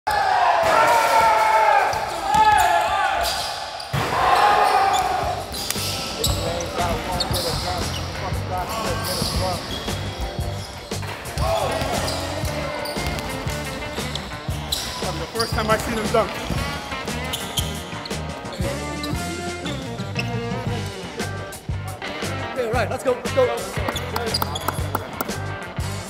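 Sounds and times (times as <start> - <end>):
players shouting: 0.1 - 5.6, 11.4 - 13.8
low music beat: 16.0 - 26.0.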